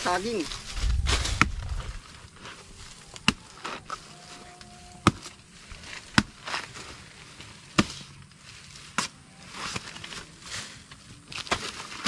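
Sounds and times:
blade chopping banana trunk: 5.0 - 5.3, 6.0 - 6.7, 7.7 - 8.1.

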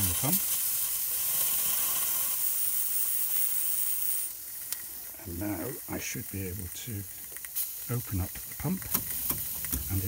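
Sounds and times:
steam hissing from drain cock: 0.0 - 10.0.

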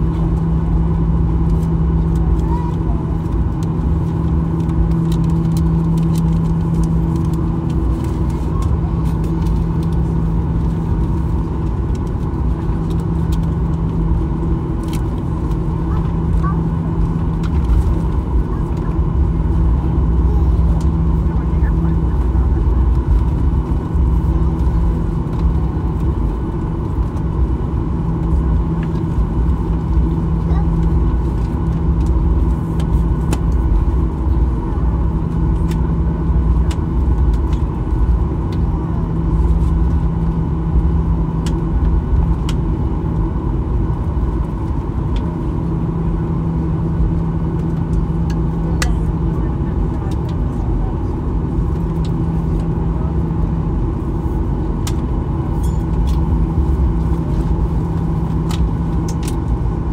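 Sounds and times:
airliner cabin rumble: 0.0 - 59.9
engine hum: 0.0 - 59.9.

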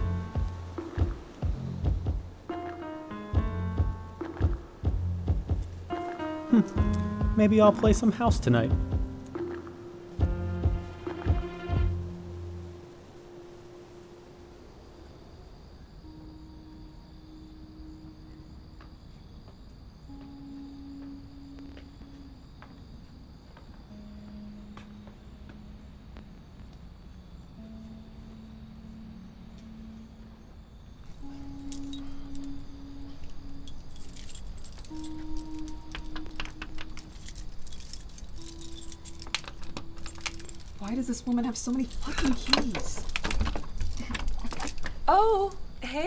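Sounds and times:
slow music with held notes: 0.0 - 15.1, 15.9 - 42.1
keys jangling: 31.3 - 32.5, 33.5 - 40.8, 41.5 - 44.9.

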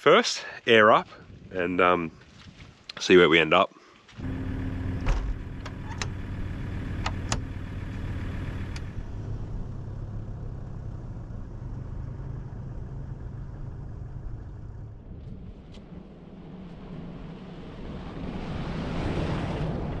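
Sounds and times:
engine running at low revs: 4.2 - 20.0
sharp clicks and knocks: 7.0 - 7.5.

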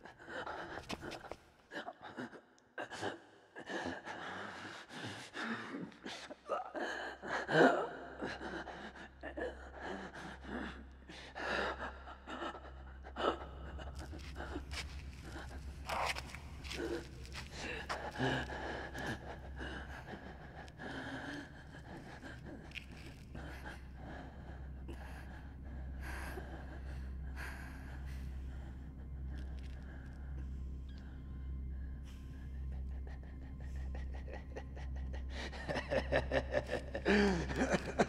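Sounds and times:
low hum: 12.0 - 38.0.

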